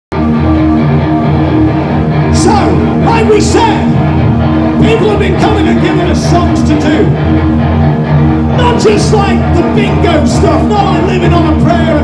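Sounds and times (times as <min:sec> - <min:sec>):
electric guitar: 0:00.1 - 0:12.0
rock band playing live: 0:00.1 - 0:12.0.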